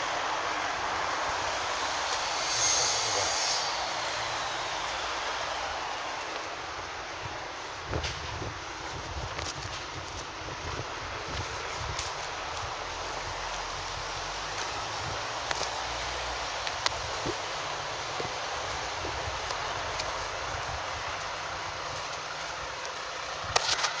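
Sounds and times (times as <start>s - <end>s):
road traffic: 0.0s - 24.0s
wind: 0.0s - 24.0s.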